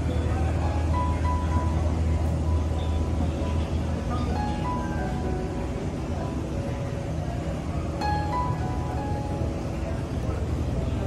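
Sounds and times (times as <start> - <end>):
distant voices: 0.0 - 11.0
faint background music: 0.0 - 11.0
steady low hum: 0.0 - 11.0.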